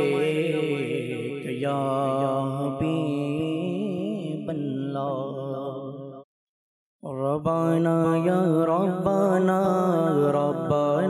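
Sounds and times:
man singing into a microphone: 0.0 - 6.1, 7.0 - 11.0.

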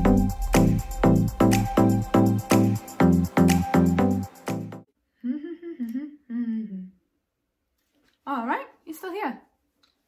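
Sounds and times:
woman humming: 5.2 - 7.1.

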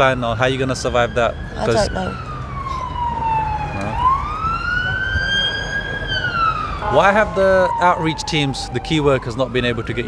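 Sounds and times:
emergency vehicle siren wailing: 0.0 - 10.0
road traffic rumble: 0.0 - 10.0.

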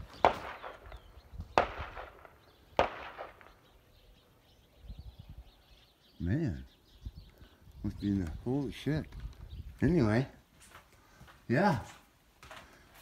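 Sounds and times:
gunshots with echo: 0.0 - 3.8.

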